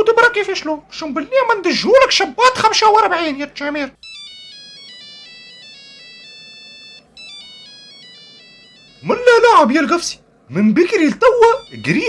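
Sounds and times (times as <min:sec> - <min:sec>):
mobile phone ringtone: 0:03.9 - 0:10.2, 0:11.3 - 0:12.0.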